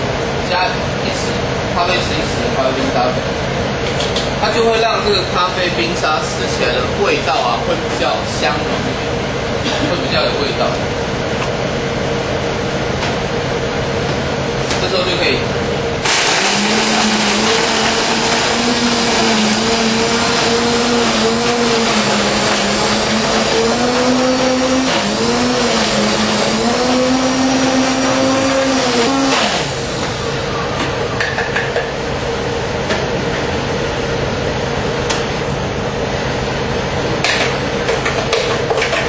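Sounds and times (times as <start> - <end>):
blender crushing ice: 16.0 - 30.2.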